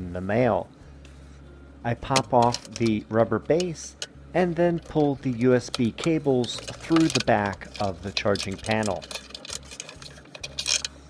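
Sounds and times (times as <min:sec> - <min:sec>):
cables clicking and rustling: 0:02.1 - 0:04.1, 0:04.7 - 0:11.0.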